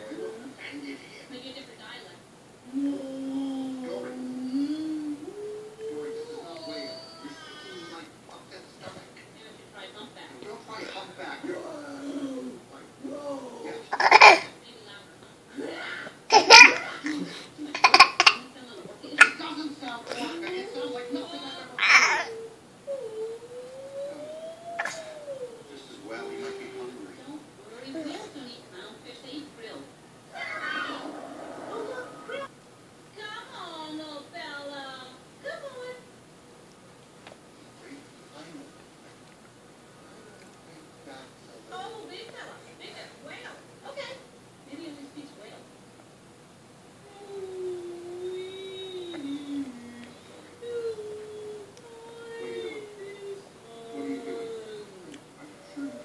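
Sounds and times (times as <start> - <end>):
cartoon voice drawn-out vowels: 23.0 - 25.7.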